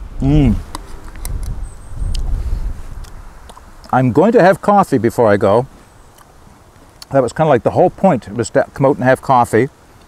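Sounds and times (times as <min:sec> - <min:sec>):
wind buffeting microphone: 0:00.0 - 0:04.4.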